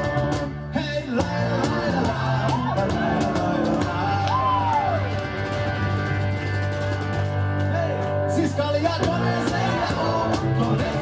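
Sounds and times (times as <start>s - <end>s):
electric guitars: 0.0s - 11.0s
steady low bass: 0.0s - 11.0s.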